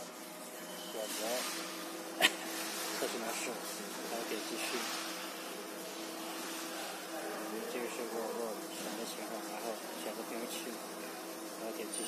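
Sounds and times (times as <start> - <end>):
faint indistinct voices: 0.0 - 12.0
low hum with hiss: 0.0 - 12.0.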